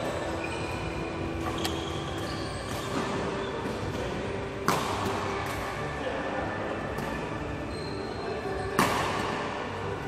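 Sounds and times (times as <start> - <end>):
racket hitting shuttlecock: 3.9 - 5.7, 8.8 - 9.5.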